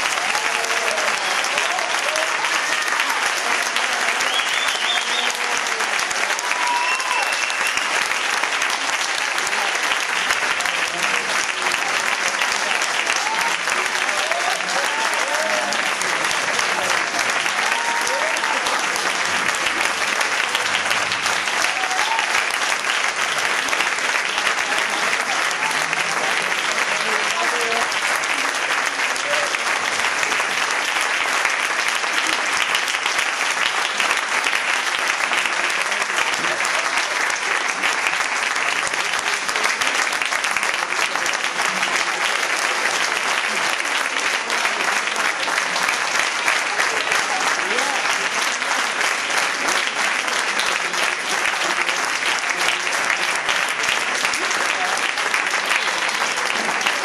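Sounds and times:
audience applauding: 0:00.0 - 0:57.0
voices over clapping: 0:00.0 - 0:57.0.

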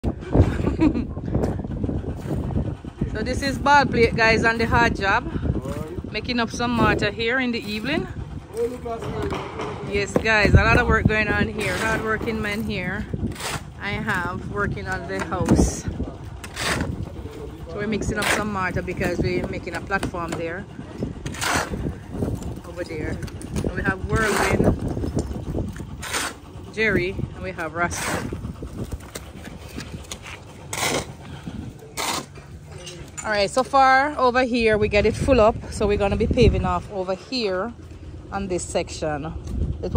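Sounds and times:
shovel scraping wet mortar: 0:11.6 - 0:12.6, 0:13.3 - 0:13.8, 0:16.4 - 0:17.1, 0:21.2 - 0:22.1, 0:24.2 - 0:24.8, 0:25.8 - 0:26.5, 0:27.7 - 0:28.4, 0:29.0 - 0:32.8.

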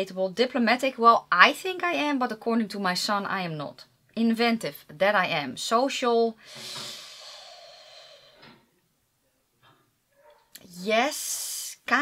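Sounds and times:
woman hissing breath through teeth: 0:06.4 - 0:08.6.

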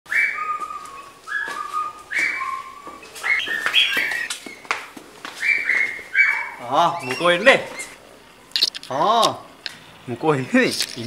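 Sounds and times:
person whistling a tune: 0:00.1 - 0:02.9.

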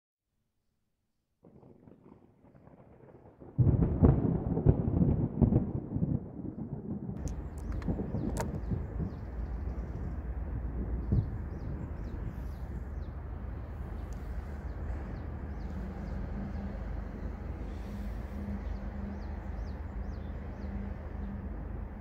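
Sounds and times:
thunder rumble: 0:01.4 - 0:22.0
low outdoor hum: 0:07.2 - 0:22.0.

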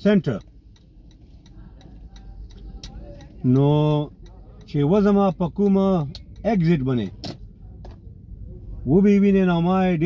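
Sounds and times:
faint regular ticking: 0:00.0 - 0:07.1
low outdoor rumble: 0:00.0 - 0:10.0.

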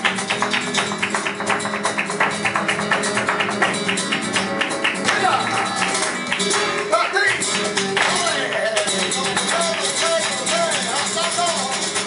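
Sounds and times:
dance footwork: 0:00.0 - 0:10.4
acoustic guitar playing: 0:00.0 - 0:12.0
hand-clapping: 0:00.0 - 0:12.0.

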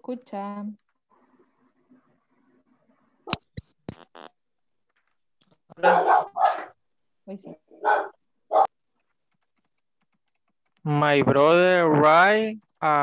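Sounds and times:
dog barking: 0:05.8 - 0:06.8, 0:07.8 - 0:08.8.

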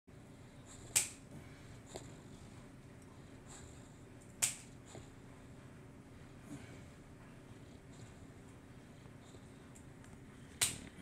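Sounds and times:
low steady background noise: 0:00.1 - 0:11.0
sharp clicks: 0:04.2 - 0:04.7.

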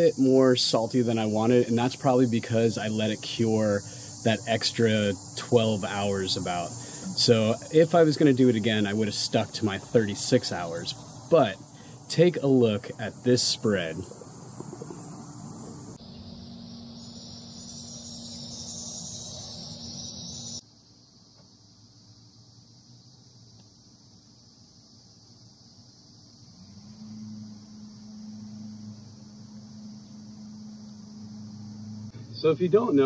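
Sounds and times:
low steady hum: 0:00.0 - 0:18.4, 0:26.2 - 0:33.0
insect chorus shrilling: 0:00.0 - 0:33.0.

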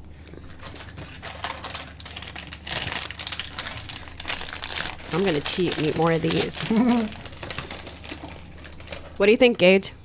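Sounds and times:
snack wrapper crinkling: 0:00.2 - 0:09.4.

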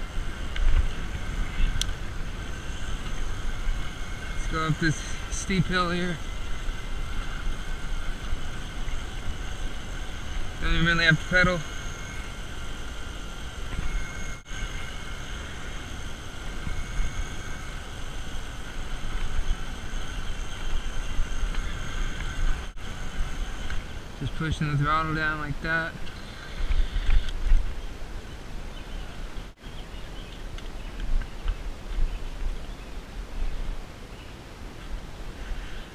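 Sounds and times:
wind rumble on microphone: 0:00.0 - 0:24.8, 0:25.4 - 0:35.9
faint electric motor whine: 0:00.0 - 0:35.9.

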